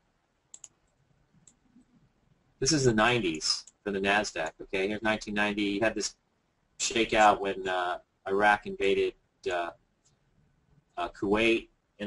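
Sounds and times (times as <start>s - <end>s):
computer mouse clicks: 0.5s - 1.7s.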